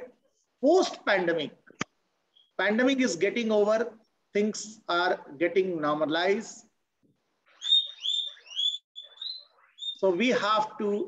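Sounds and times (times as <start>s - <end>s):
animal chirping: 7.4s - 10.3s.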